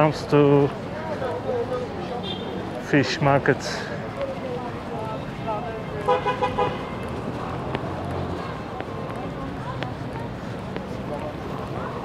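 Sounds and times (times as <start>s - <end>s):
busy street noise: 0.0s - 12.0s
vehicle horn tooting: 6.0s - 7.0s.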